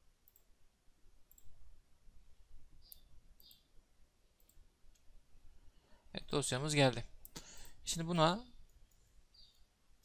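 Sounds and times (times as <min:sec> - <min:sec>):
low room hum: 0:00.0 - 0:10.0
computer mouse clicks: 0:00.2 - 0:00.5, 0:01.3 - 0:01.5, 0:02.8 - 0:03.7, 0:04.4 - 0:05.1.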